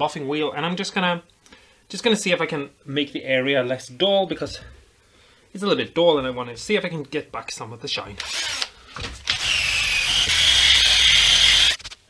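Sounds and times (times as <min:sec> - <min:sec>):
drill buffing wheel whining: 0:08.2 - 0:08.7, 0:09.3 - 0:11.8.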